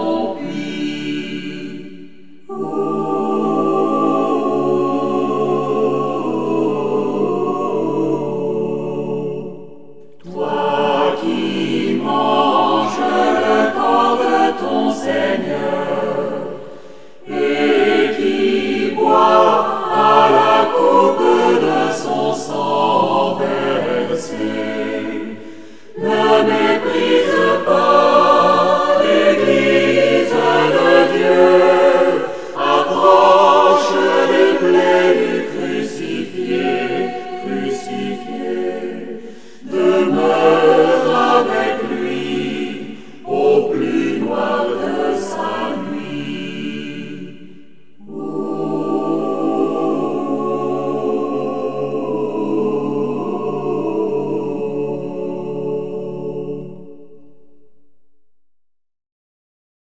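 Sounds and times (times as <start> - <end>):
choir singing: 0.0 - 57.7.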